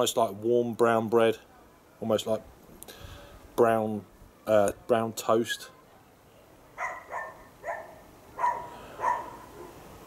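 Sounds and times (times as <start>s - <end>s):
dog barking: 6.8s - 9.8s.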